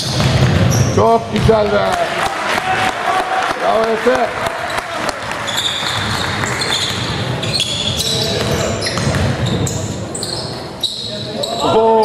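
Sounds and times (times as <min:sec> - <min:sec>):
sneakers squeaking on court: 0:00.0 - 0:01.8, 0:04.6 - 0:11.8
basketball bouncing: 0:00.0 - 0:03.0, 0:03.8 - 0:10.0.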